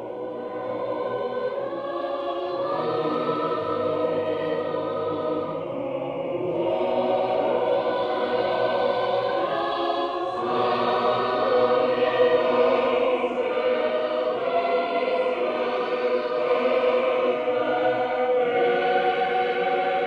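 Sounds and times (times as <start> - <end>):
choir singing sacred music: 0.0 - 20.0.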